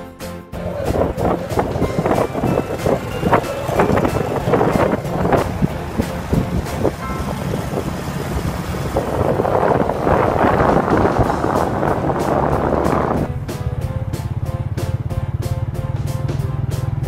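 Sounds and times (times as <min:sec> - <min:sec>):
faint music: 0:00.6 - 0:08.4
wind buffeting microphone: 0:00.6 - 0:15.2
scooter engine running: 0:00.6 - 0:17.0.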